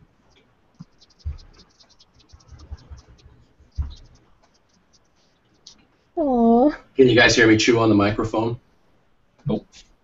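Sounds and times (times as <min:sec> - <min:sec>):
marker scratching across paper: 0:00.7 - 0:05.8
dull low thumps: 0:02.3 - 0:04.2.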